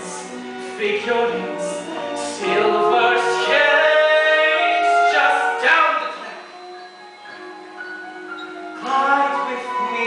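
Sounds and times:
musical accompaniment: 0:00.0 - 0:10.0
voices singing sustained notes: 0:00.0 - 0:10.0.

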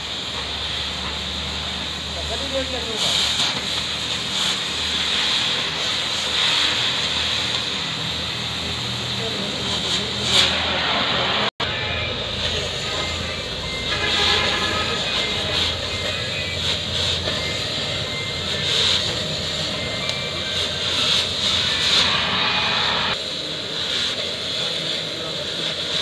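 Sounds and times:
cutting torch hissing roar: 0:00.0 - 0:11.5, 0:12.1 - 0:26.0.

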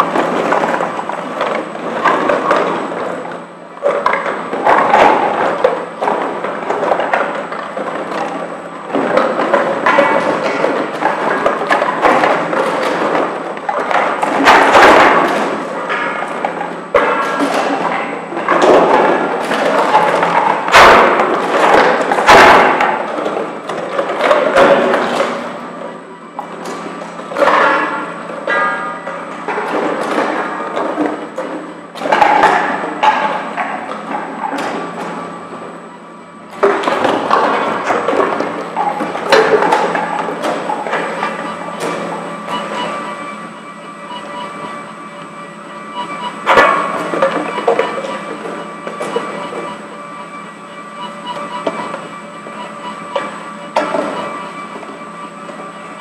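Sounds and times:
conveyor machine clatter: 0:00.0 - 0:56.0
plastic bottles knocking hollowly: 0:03.9 - 0:25.4.

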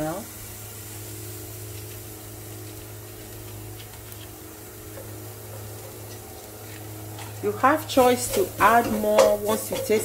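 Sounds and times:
food sizzling in a pot: 0:00.0 - 0:10.0
low hum: 0:00.0 - 0:10.0.

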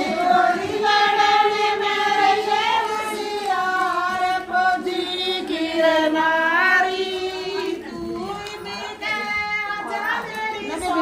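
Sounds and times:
women singing folk song: 0:00.0 - 0:11.0.

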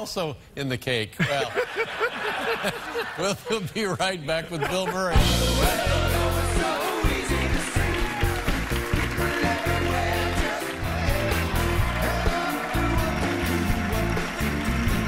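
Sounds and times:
upbeat rock music: 0:05.0 - 0:15.0
steady drumbeat: 0:05.1 - 0:15.0
moving bass line: 0:05.2 - 0:15.0.

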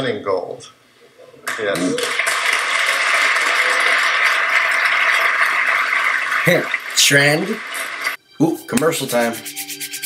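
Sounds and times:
audience applause: 0:01.5 - 0:08.2.

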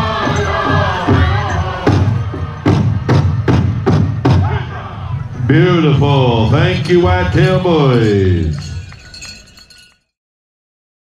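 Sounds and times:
glassy clinks and chimes: 0:06.6 - 0:10.2.

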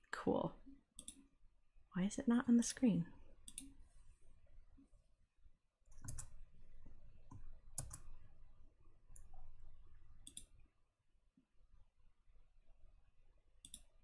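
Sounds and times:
faint computer mouse clicks: 0:01.0 - 0:01.2, 0:03.4 - 0:03.8, 0:10.2 - 0:10.5, 0:13.6 - 0:13.9.

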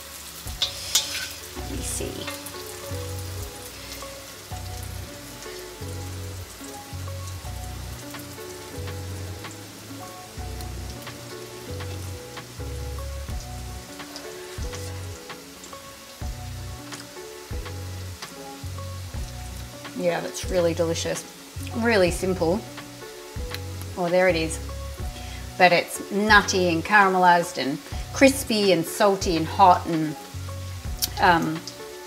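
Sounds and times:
curry sizzling in hot oil: 0:00.0 - 0:32.0
background music with bass line: 0:00.1 - 0:25.6, 0:29.2 - 0:32.0.

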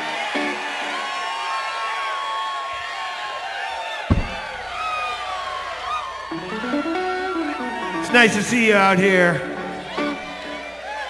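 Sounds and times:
audience cheering and whooping: 0:00.0 - 0:08.8, 0:09.5 - 0:11.0
deep thump: 0:04.1 - 0:05.2.

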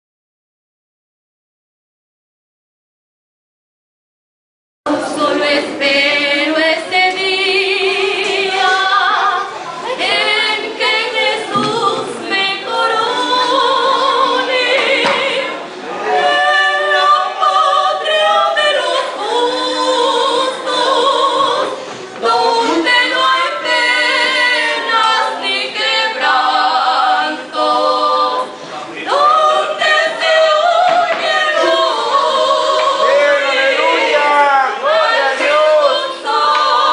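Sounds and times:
two women singing a duet: 0:04.9 - 0:36.9.

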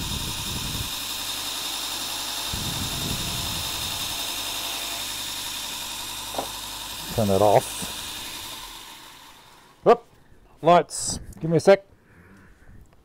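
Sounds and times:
belt sharpener running: 0:00.0 - 0:10.0
compound rubbing on spinning mop: 0:01.7 - 0:10.0.

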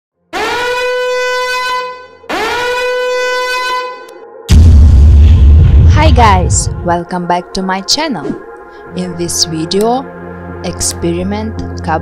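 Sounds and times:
horn warning blasts: 0:00.3 - 0:04.2.

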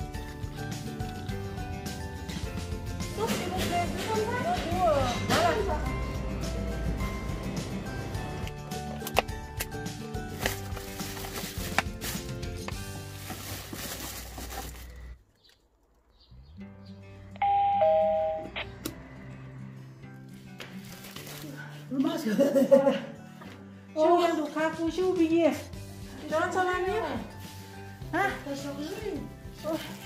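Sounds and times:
voice: 0:03.2 - 0:05.9, 0:26.2 - 0:27.3, 0:28.1 - 0:29.9
two-note doorbell chime: 0:17.4 - 0:18.6.

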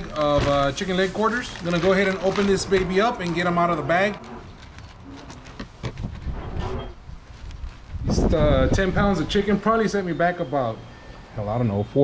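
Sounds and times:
plastic bag crinkling: 0:00.0 - 0:06.2, 0:07.1 - 0:08.1.

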